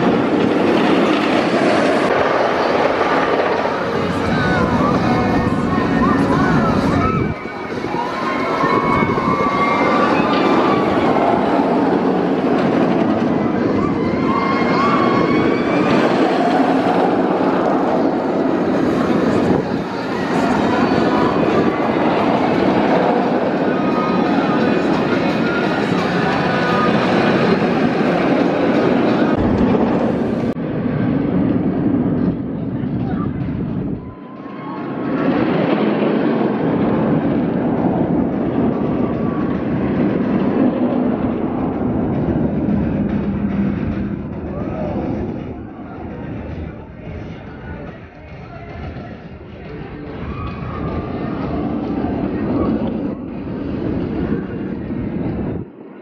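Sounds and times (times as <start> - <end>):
roller coaster train rumble: 0.0 - 56.0
riders screaming: 6.8 - 11.8, 13.6 - 17.2.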